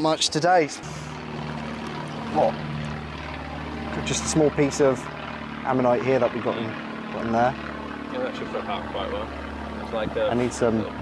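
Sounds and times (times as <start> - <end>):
engine droning: 0.0 - 11.0.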